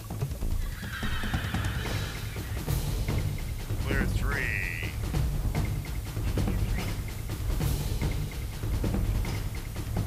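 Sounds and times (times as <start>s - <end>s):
horse whinnying: 0.6s - 2.7s
background music with low bass: 1.4s - 10.0s.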